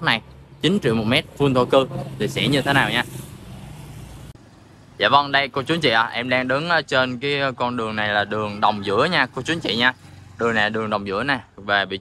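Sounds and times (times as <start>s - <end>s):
street traffic rush: 0.0s - 12.0s.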